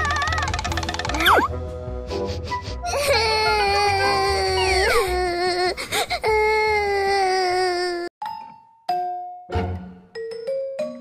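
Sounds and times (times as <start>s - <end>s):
cartoon crying wail: 2.9s - 5.6s.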